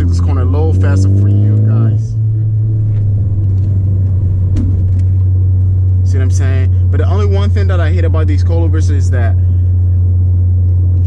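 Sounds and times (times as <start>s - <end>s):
car engine drone: 0.0s - 11.0s
road rumble: 0.0s - 11.0s.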